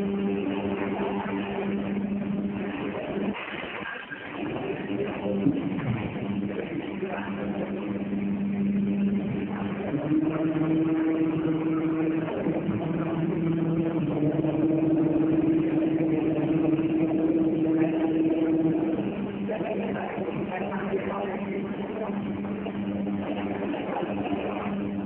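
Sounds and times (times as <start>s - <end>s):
machine hum shifting pitch: 0.0s - 25.0s.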